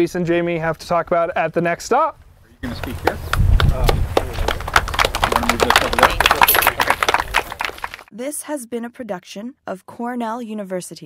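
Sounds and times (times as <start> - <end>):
audience applauding: 3.0 - 8.1.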